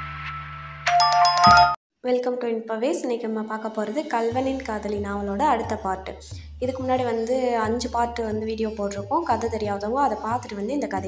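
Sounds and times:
bright bell-like chime tones: 0.9s - 1.8s.

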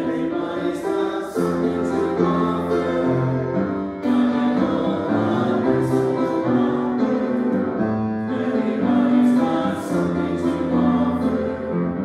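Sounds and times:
congregation singing a hymn: 0.0s - 12.0s
piano accompaniment: 0.0s - 12.0s.

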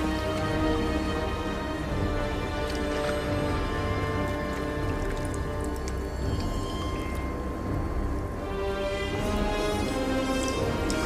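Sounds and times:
background music held tones: 0.0s - 11.0s.

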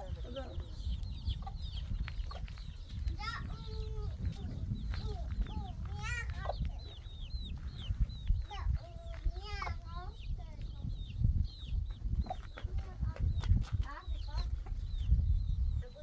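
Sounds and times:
chickens chirping: 0.0s - 16.0s
chickens clucking: 0.0s - 16.0s
wind rumble on microphone: 0.0s - 16.0s.

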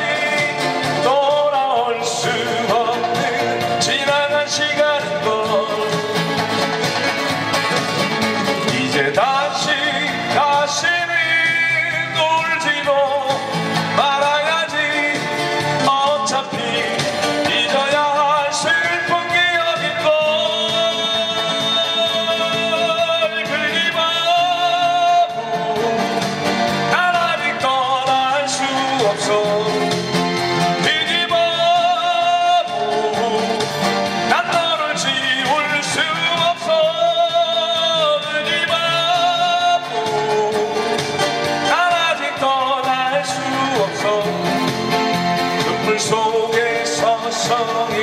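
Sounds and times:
man singing with vibrato: 0.0s - 48.0s
strummed acoustic guitars: 0.0s - 48.0s.

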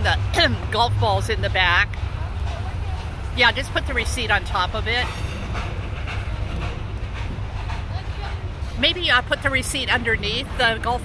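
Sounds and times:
low outdoor rumble: 0.0s - 11.0s.

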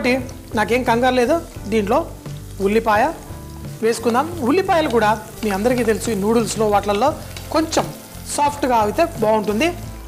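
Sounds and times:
background music: 0.0s - 10.0s
vegetables sizzling in oil: 0.0s - 10.0s.

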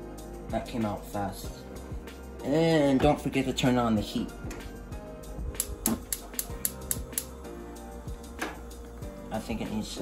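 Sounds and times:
background music: 0.0s - 10.0s
gas burner igniter clicking: 5.5s - 7.5s, 8.1s - 9.0s.

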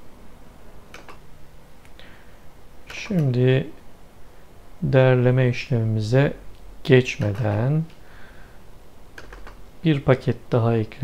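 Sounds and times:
computer keyboard clicks: 0.9s - 1.2s, 9.2s - 9.6s.

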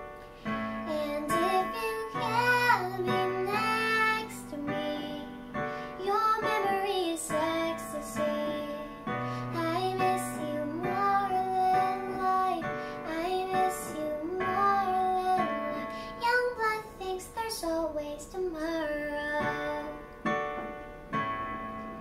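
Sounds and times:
girl singing: 0.6s - 20.2s
electronic keyboard chords: 19.2s - 22.0s.

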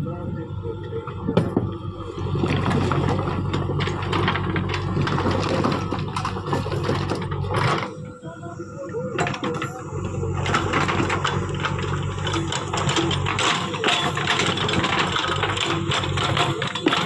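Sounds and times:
diesel engine running: 0.0s - 17.0s
rocks clattering and scraping: 2.2s - 8.0s, 9.2s - 17.0s.

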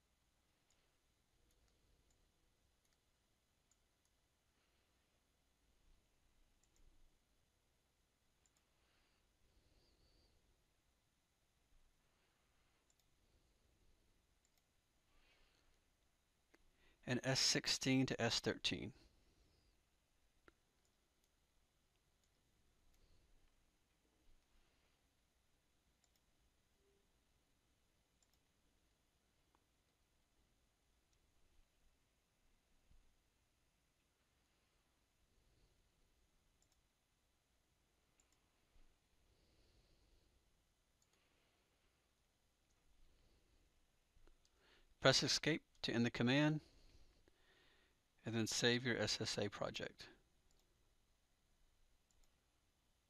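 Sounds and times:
computer mouse clicks: 2.8s - 3.1s, 6.6s - 7.0s, 8.4s - 8.7s, 12.8s - 13.2s, 14.4s - 14.8s, 26.0s - 26.4s, 28.2s - 28.5s, 36.6s - 36.9s, 38.1s - 38.5s, 41.0s - 41.4s, 50.4s - 50.8s, 52.0s - 52.4s
faint hiss: 44.4s - 50.2s.

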